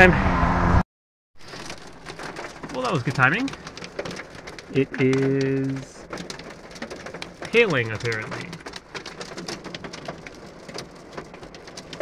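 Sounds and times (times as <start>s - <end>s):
hail striking car roof: 1.4s - 12.0s.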